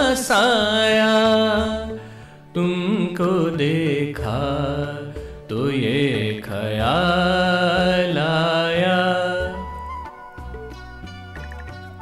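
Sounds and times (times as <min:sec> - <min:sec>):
ornamented melodic music: 0:00.0 - 0:12.0.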